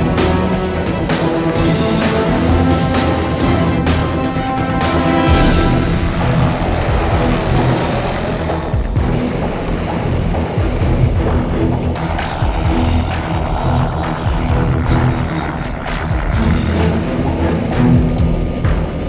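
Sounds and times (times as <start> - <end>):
aircraft engine and propeller: 0.0 - 19.0
music: 0.0 - 19.0.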